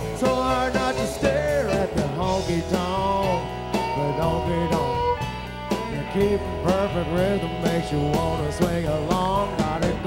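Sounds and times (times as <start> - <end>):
country band playing: 0.0 - 10.0.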